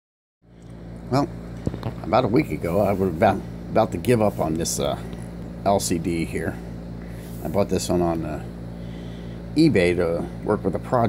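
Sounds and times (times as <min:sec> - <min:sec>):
steady low hum: 0:00.4 - 0:11.0.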